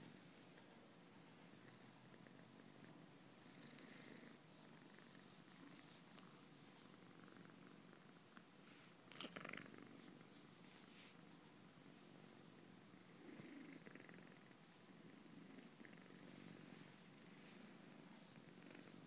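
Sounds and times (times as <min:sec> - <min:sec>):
cat purring: 0:00.0 - 0:19.0.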